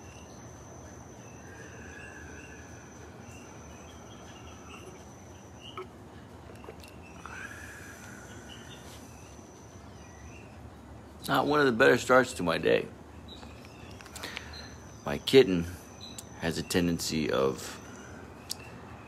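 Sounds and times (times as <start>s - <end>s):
insect trilling: 0.0s - 10.5s
faint bird calls: 0.0s - 10.6s.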